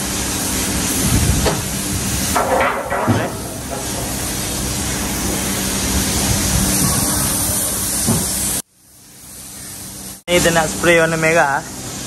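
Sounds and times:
spray gun hissing: 0:00.0 - 0:11.2.

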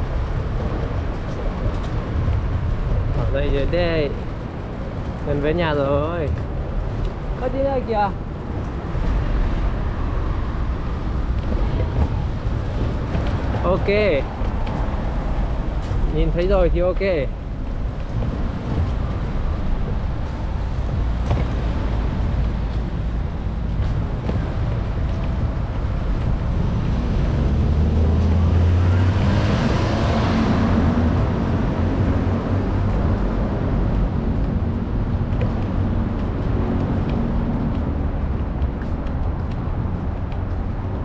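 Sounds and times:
city road traffic rumble: 0:00.0 - 0:41.0
vehicle passing close: 0:18.1 - 0:38.4.

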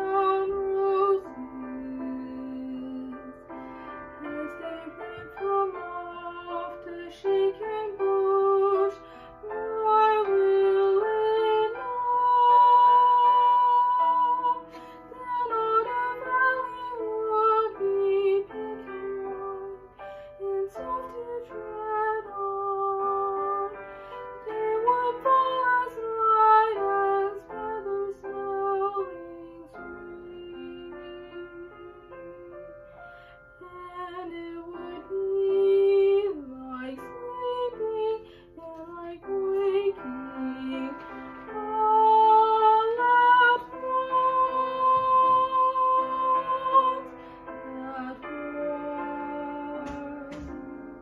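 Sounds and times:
woman singing gently: 0:00.0 - 0:03.6, 0:04.2 - 0:32.6, 0:33.6 - 0:51.0.

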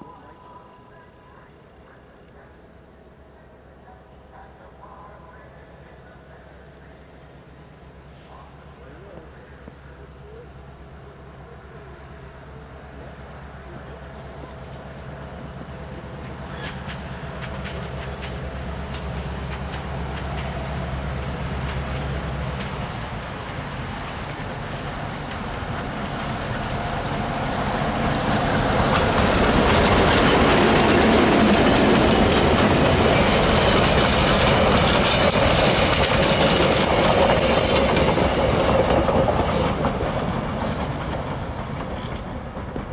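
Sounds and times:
diesel locomotive engine drone: 0:00.0 - 0:42.9
train wheels clattering over rail joints: 0:28.0 - 0:42.9.

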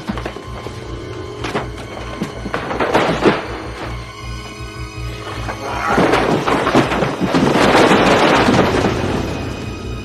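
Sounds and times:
cardboard boxes crashing and tumbling: 0:01.4 - 0:04.0, 0:05.4 - 0:09.3.

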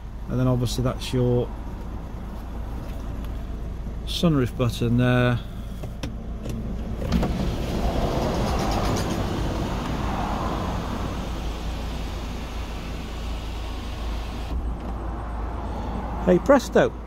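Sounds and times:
diesel engine idling: 0:07.6 - 0:17.0.

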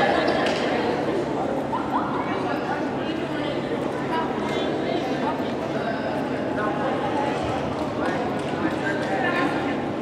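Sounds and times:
echoing chatter and calls: 0:00.0 - 0:10.0.

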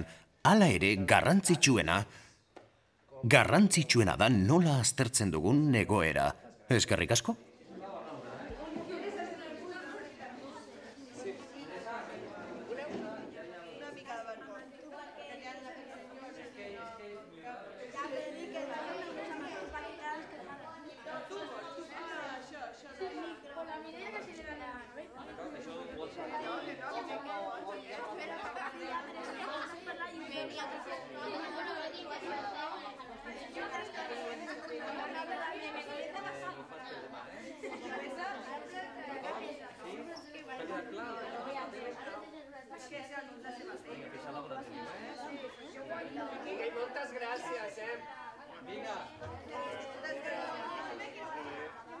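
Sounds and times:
children chattering: 0:07.6 - 0:52.0.

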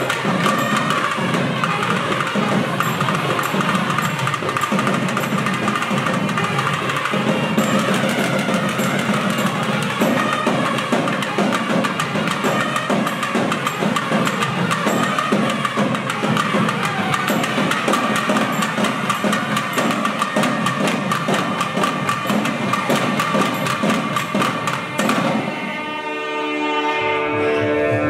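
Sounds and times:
drums playing fast rhythm: 0:00.0 - 0:26.0
pipes holding long note: 0:25.2 - 0:28.0.

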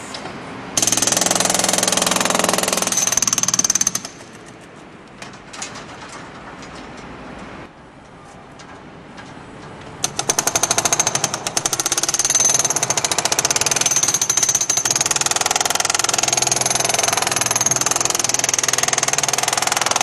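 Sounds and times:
hydraulic breaker hammering concrete: 0:00.8 - 0:04.3, 0:10.0 - 0:20.0.

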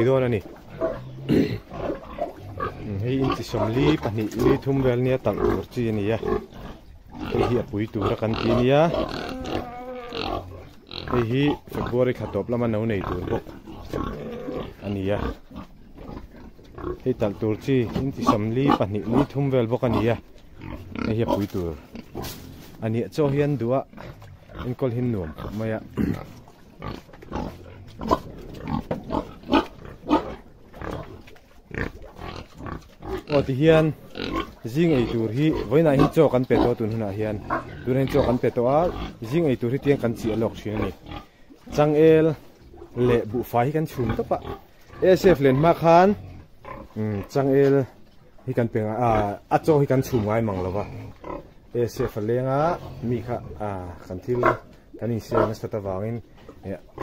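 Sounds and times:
man talking: 0:00.0 - 0:00.6, 0:02.8 - 0:06.4, 0:07.2 - 0:09.3, 0:11.0 - 0:13.4, 0:14.8 - 0:15.4, 0:17.0 - 0:20.2, 0:21.0 - 0:21.8, 0:22.8 - 0:23.9, 0:24.6 - 0:26.2, 0:33.3 - 0:34.0, 0:34.6 - 0:41.0, 0:41.7 - 0:42.4, 0:43.0 - 0:46.2, 0:46.9 - 0:47.9, 0:48.5 - 0:57.0
pigs grunting: 0:00.0 - 0:57.0.

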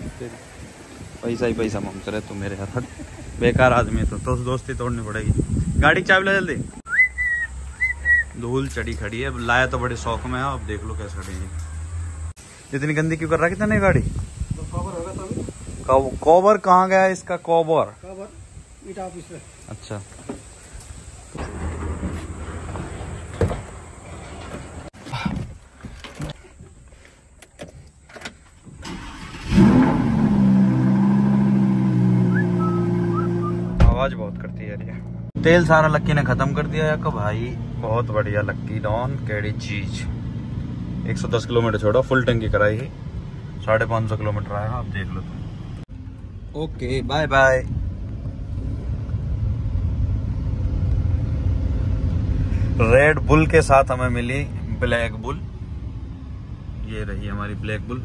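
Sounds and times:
car engine starting and idling: 0:21.3 - 0:25.0, 0:27.4 - 0:58.0.

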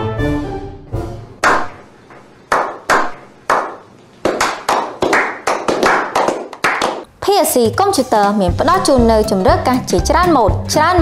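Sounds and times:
hand claps with echo: 0:01.4 - 0:07.1.

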